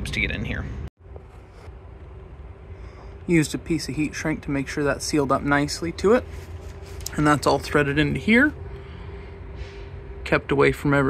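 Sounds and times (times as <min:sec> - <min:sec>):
faint constant hum: 0:00.0 - 0:11.0
low background rumble: 0:00.0 - 0:11.0.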